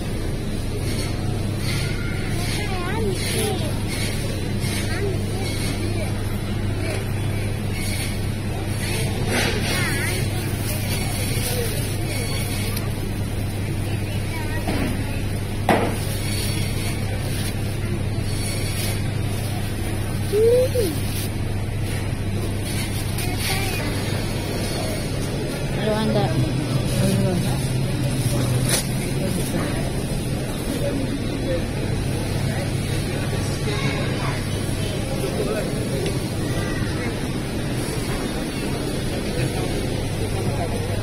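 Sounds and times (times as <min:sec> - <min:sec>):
distant chatter: 0:00.0 - 0:41.0.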